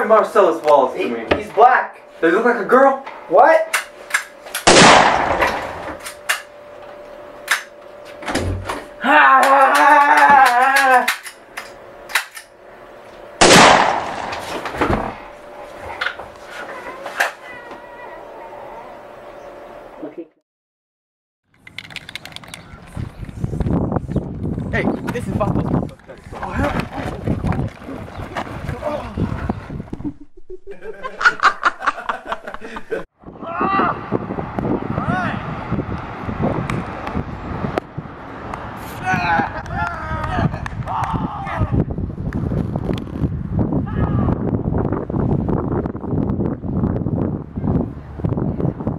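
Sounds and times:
noisy outdoor background: 0.0 - 20.4, 21.4 - 48.9
revolver gunshot: 4.6 - 6.0, 13.4 - 14.7
laughter: 29.9 - 33.1.

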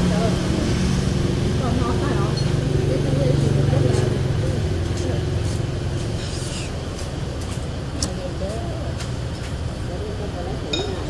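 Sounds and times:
passing vehicle engine rumble: 0.0 - 11.0
utensil clinking on dish: 10.7 - 11.0.

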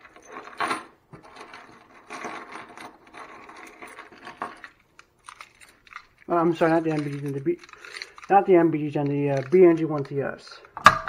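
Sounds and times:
keys jangling: 0.0 - 10.2.

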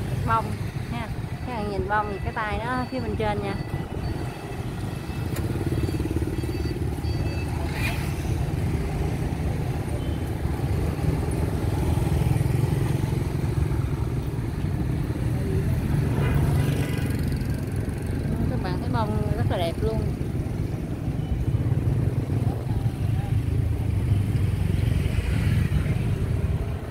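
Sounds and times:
motorbikes passing: 0.0 - 26.9.

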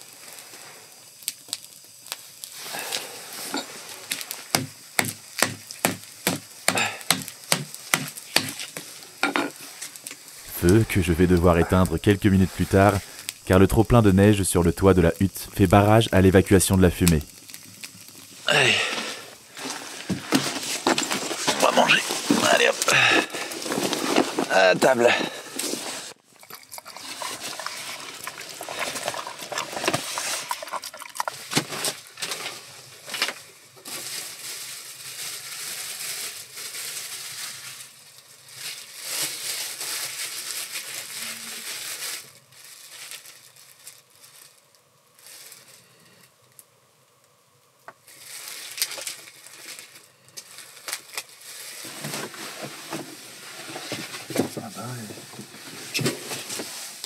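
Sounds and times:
plastic bag crinkling: 1.3 - 46.6, 48.0 - 57.0.

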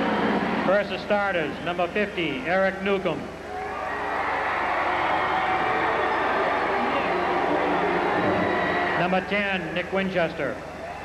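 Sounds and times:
crowd cheering and clapping: 0.0 - 0.8, 3.5 - 9.5, 10.7 - 11.0.

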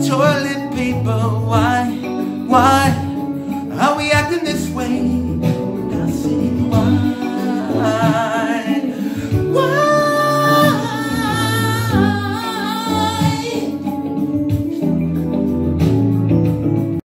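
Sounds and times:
man singing with vibrato: 0.0 - 13.9
karaoke backing track: 0.0 - 17.0.

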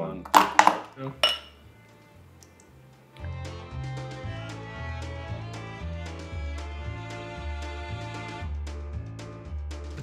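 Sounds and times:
faint background music: 0.0 - 10.0
glasses clinking: 0.2 - 1.6.

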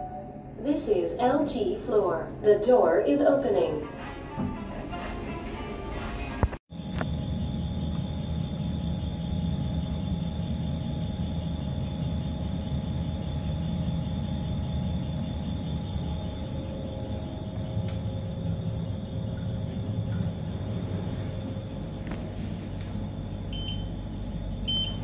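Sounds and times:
lift low rumble and whine: 0.0 - 25.0.

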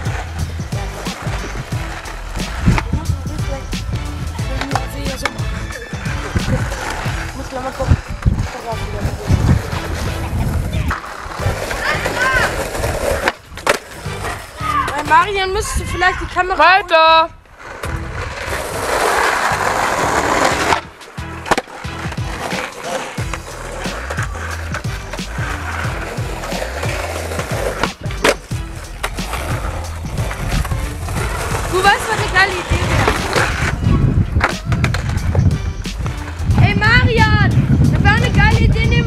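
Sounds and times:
skateboard clacks: 0.0 - 15.3, 17.7 - 37.4
skateboard wheels rolling on asphalt: 0.0 - 39.0.

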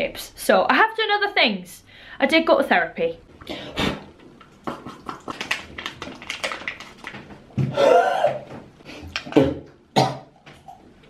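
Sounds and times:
packaging rustles and clicks: 5.3 - 7.4.

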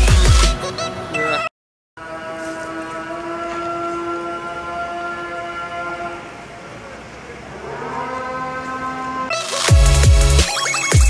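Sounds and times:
call to prayer over loudspeaker: 1.2 - 6.8.

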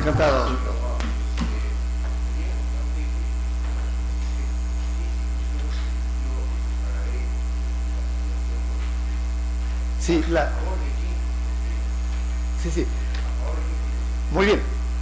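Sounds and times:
electrical mains hum: 0.0 - 15.0.

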